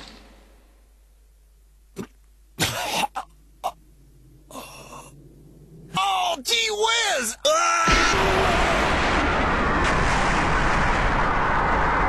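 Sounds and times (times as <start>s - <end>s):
man coughing: 2.6s - 3.8s.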